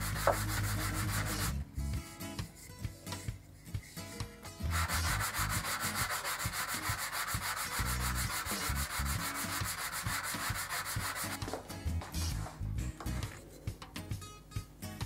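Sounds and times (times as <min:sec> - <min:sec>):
wood rubbed on sandpaper: 0:00.0 - 0:01.6, 0:03.6 - 0:11.6.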